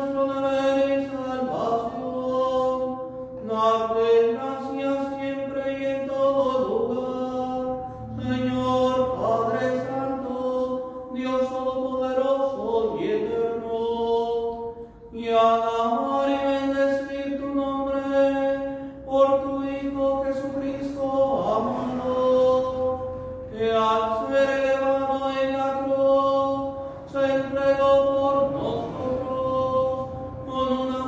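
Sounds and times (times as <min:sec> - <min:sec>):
man chanting: 0:00.0 - 0:31.0.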